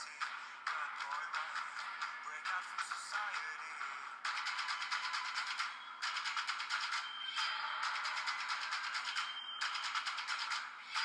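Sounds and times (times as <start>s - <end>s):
music with fast even beat: 0.0s - 11.0s.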